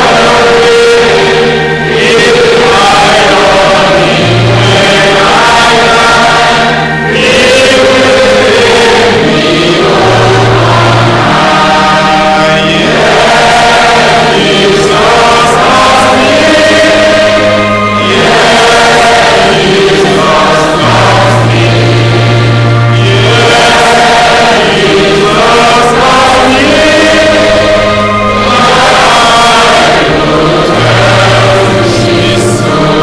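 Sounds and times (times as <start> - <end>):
choir singing: 0.0 - 33.0
long held low notes: 0.0 - 33.0.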